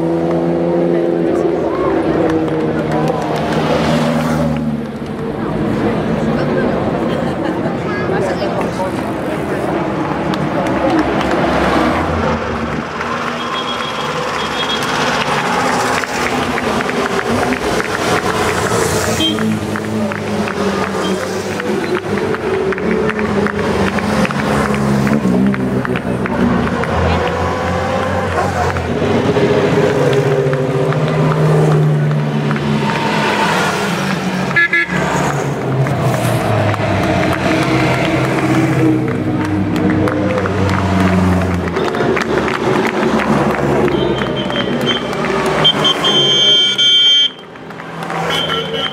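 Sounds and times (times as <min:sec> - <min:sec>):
racing car engine passing: 0:00.0 - 0:46.4
crowd chatter: 0:00.0 - 0:48.9.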